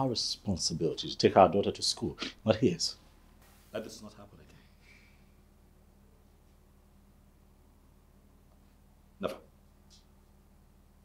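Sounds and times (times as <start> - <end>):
low electrical hum: 0.0 - 11.0
faint breathy hiss: 2.1 - 5.6.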